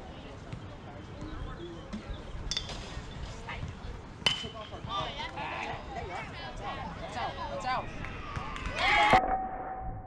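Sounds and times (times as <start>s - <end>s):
spectators shouting and cheering: 4.8s - 9.2s.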